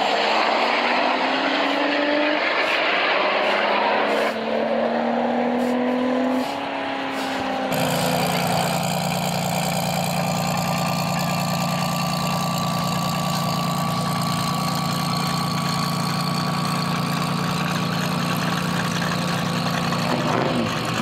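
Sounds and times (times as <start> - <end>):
race car engines idling: 5.6 - 21.0.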